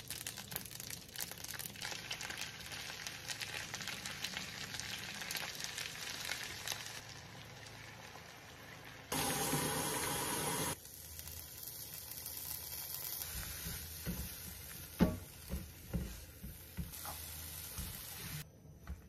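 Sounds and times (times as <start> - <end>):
sauce sizzling in hot pan: 0.0 - 18.4.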